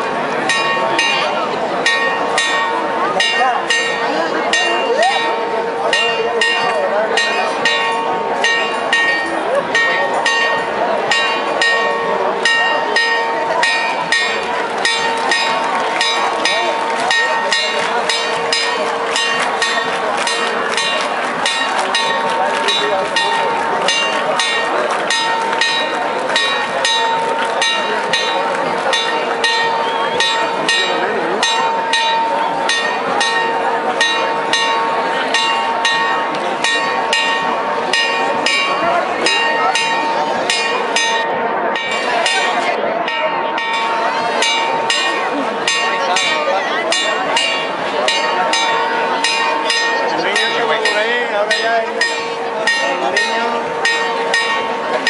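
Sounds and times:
bells pealing: 0.0 - 55.0
large crowd talking: 0.0 - 55.0.

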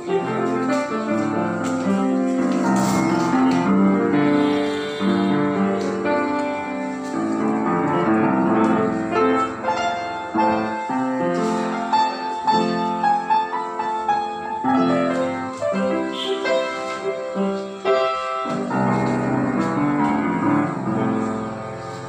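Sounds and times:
upright piano melody and chords: 0.0 - 22.0.

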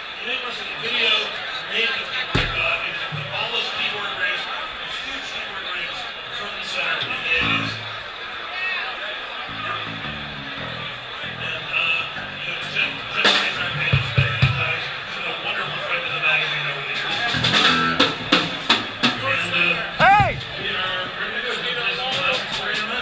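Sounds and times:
voices over music: 0.0 - 23.0
live band playing: 17.0 - 19.2, 20.0 - 20.5
person whooping: 20.0 - 20.4
conga hits: 20.0 - 20.5.

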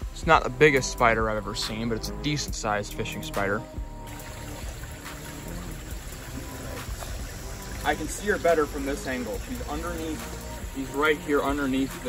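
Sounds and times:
soft background music: 0.0 - 12.0
running water in a creek: 4.0 - 12.0.

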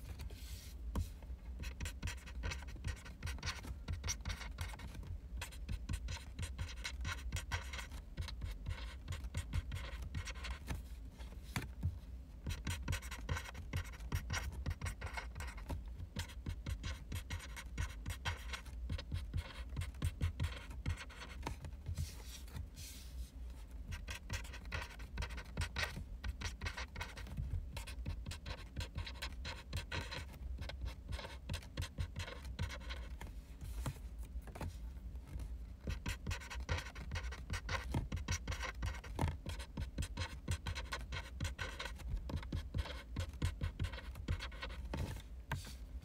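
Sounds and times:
marker pen scratching on cards: 0.0 - 10.8, 12.4 - 23.2, 23.8 - 34.0, 35.8 - 45.8.

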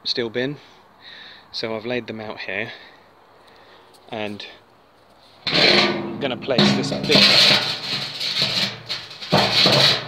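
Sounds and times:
metal bin scraping on bricks: 5.4 - 10.0.

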